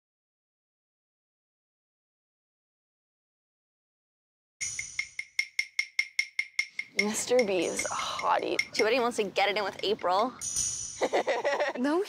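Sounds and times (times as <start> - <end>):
sharp percussive clicks: 4.6 - 9.8, 10.4 - 11.2.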